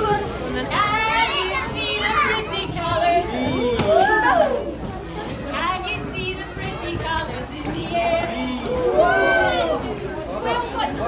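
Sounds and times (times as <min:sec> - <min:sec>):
children shouting and squealing: 0:00.0 - 0:05.0, 0:08.7 - 0:10.0.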